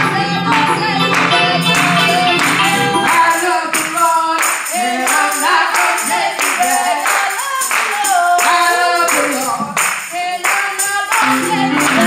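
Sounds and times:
tambourine striking the beat: 0.0 - 12.0
hand-clapping: 0.5 - 12.0
girl singing into a microphone: 3.0 - 12.0.

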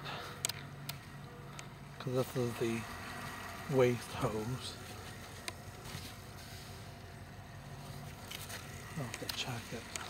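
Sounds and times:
pool pump humming: 0.1 - 10.0.

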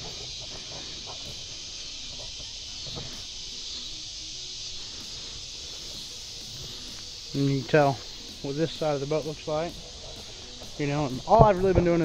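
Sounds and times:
faint rustles: 0.0 - 12.0
insects chirring: 0.0 - 12.0.

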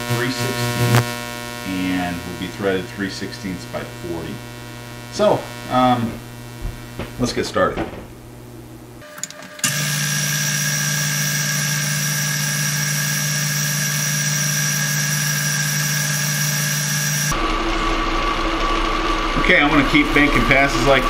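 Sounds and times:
metal lathe motor whine: 9.0 - 21.0.

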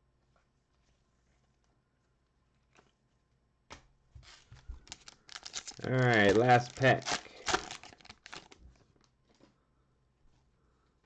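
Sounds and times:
foil wrapper tearing and crinkling: 4.2 - 8.6.

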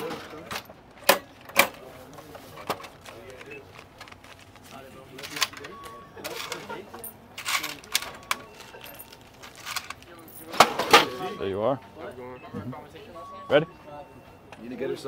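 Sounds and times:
paper bills rustling: 1.8 - 6.8, 7.4 - 10.2
register keypad beeps: 3.4 - 3.7, 5.6 - 6.8, 11.1 - 14.9.

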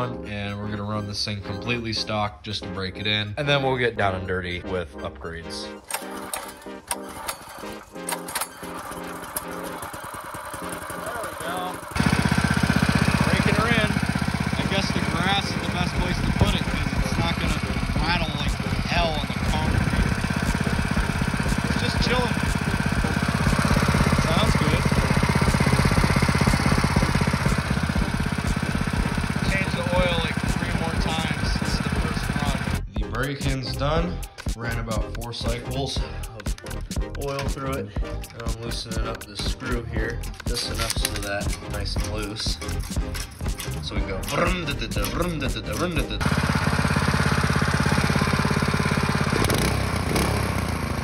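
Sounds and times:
background music: 0.0 - 49.7
small engine running: 5.9 - 32.9, 40.4 - 51.0.

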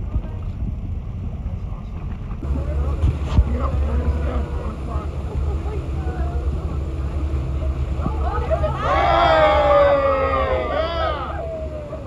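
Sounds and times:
faint passenger voices: 0.0 - 12.0
boat engine idling: 2.4 - 12.0.

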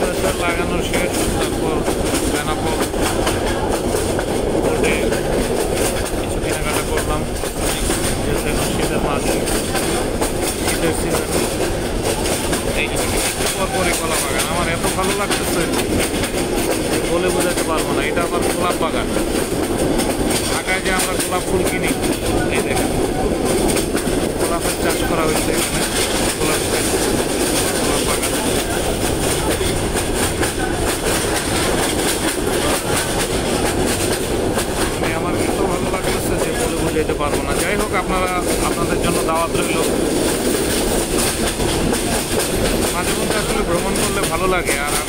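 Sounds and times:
train wheels on rails: 0.0 - 45.0.

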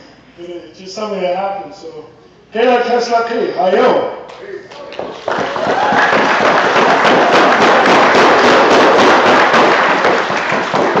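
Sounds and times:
hand drums beating: 6.1 - 11.0.

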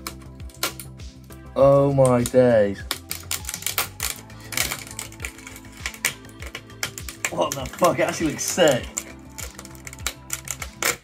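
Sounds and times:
plastic supports snapping and crackling: 0.0 - 11.0.

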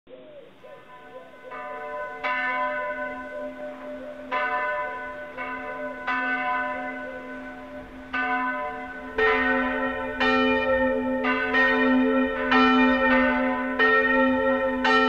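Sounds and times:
church bells pealing: 0.6 - 15.0.

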